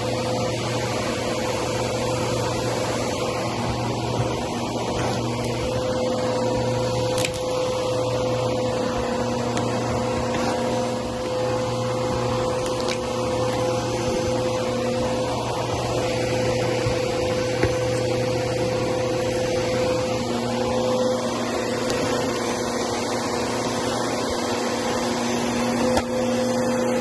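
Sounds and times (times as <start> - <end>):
vacuum cleaner running: 0.0 - 27.0.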